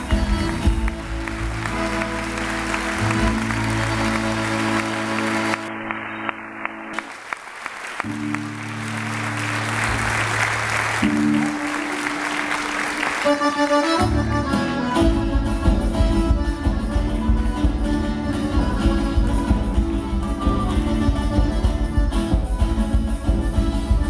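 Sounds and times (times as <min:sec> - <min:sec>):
accordion chords: 0:00.0 - 0:07.1, 0:08.0 - 0:24.0
audience applauding: 0:00.0 - 0:14.2.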